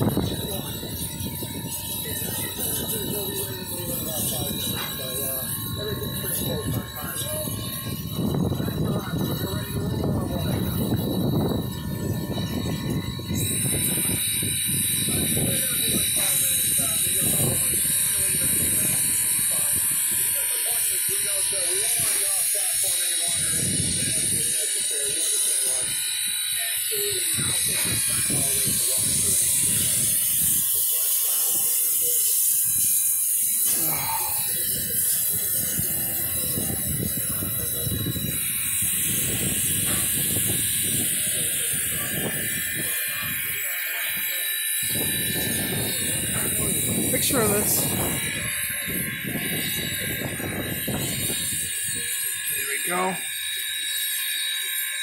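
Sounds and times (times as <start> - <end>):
steam locomotive hissing: 0.0 - 11.0, 11.7 - 55.0
people talking: 0.0 - 55.0.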